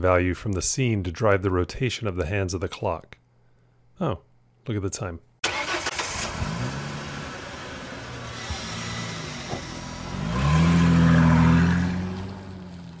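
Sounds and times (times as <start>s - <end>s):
car engine running and revving: 6.2s - 13.0s.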